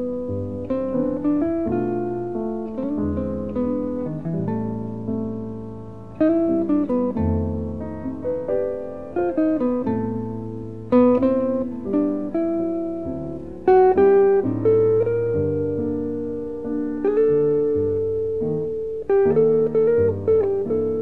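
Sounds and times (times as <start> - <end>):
jazz guitar notes and chords: 0.0 - 21.0
piano: 0.0 - 21.0.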